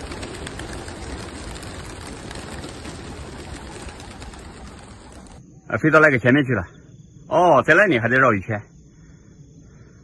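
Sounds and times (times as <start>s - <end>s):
pigeon wingbeats fluttering: 0.0s - 5.4s.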